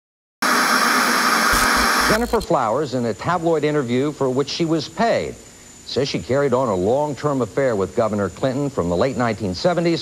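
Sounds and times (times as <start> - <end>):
static hiss: 0.4 - 3.0
person speaking: 1.6 - 2.5.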